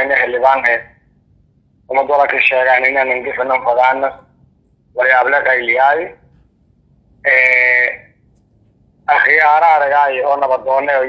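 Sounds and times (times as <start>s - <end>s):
man chanting: 1.9s - 4.2s, 7.2s - 8.1s, 9.1s - 11.0s.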